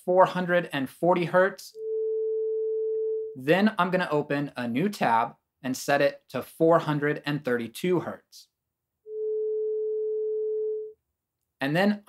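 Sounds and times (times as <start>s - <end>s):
steady sine tone: 1.8s - 3.4s, 9.1s - 10.9s.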